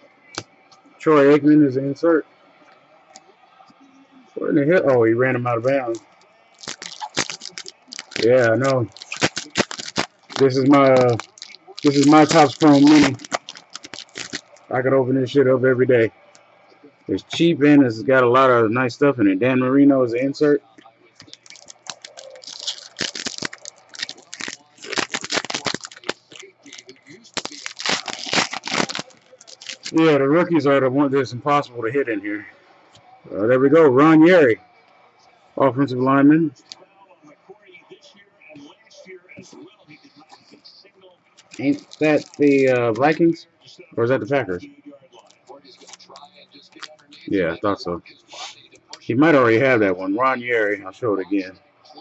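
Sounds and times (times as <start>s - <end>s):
foil wrapper crinkling and tearing: 5.8s - 14.7s, 21.2s - 30.2s, 41.4s - 43.2s, 45.2s - 46.2s.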